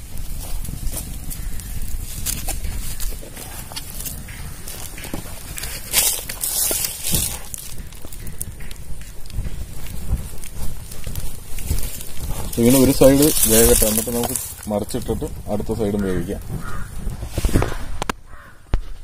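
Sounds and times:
sharp pops of fire: 0.0 - 15.4, 16.4 - 19.0
wood fire crackling: 0.0 - 18.9.

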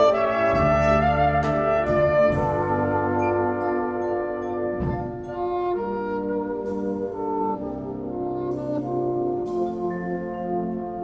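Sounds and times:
alto saxophone solo: 0.0 - 11.0
wind band playing a ballad: 0.0 - 11.0.

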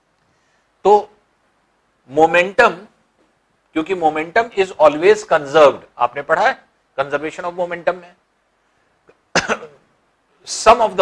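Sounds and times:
man coughing: 9.3 - 9.8.

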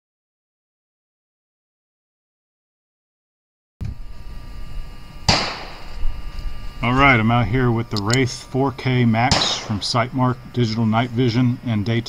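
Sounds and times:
faint steady whine: 3.8 - 12.0
sharp crack with ringing tail: 5.2 - 6.0, 9.2 - 10.0
wind rumble on microphone: 5.9 - 7.9.

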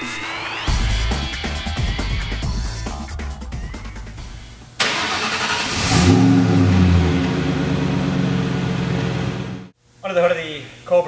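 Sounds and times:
car engine starting and idling: 4.8 - 9.8.

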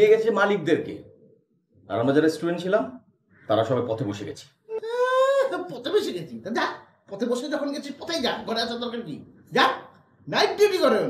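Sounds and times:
man speaking angrily: 5.2 - 11.0.

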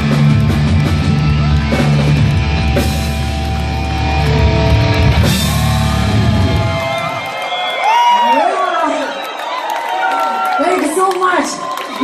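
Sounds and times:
live heavy metal band: 0.0 - 7.3
crowd noise: 0.0 - 12.0.

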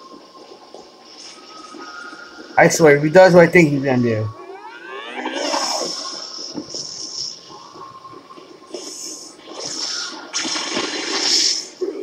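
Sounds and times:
rising sweep: 4.3 - 7.9.

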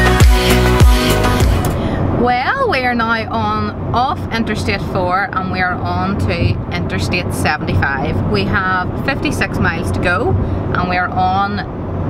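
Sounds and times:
music with heavy beat: 0.0 - 1.8
car road noise inside cabin: 0.8 - 12.0
woman talking: 2.2 - 11.7.

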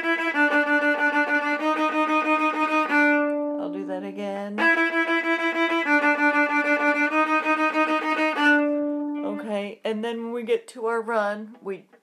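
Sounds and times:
bowed viola fast notes: 0.0 - 9.6.

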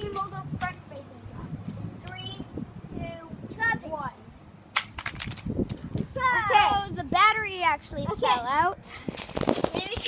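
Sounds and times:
child's voice: 0.0 - 4.2, 6.1 - 8.9, 9.6 - 10.0.

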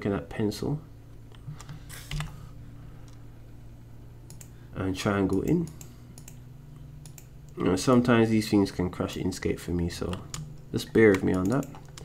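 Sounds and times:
low electrical hum: 0.0 - 12.0
computer keyboard clicks: 4.3 - 4.5, 5.3 - 6.4, 7.0 - 7.3, 10.1 - 12.0.

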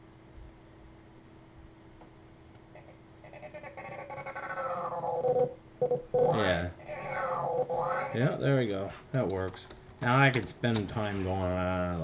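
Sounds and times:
person imitating cat meow: 6.3 - 8.3.

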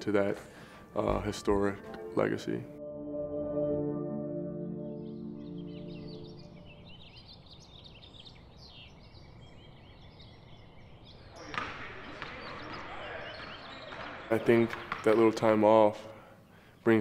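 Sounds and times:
soft ambient music chord: 0.0 - 8.0
small birds chirping: 4.9 - 15.3.

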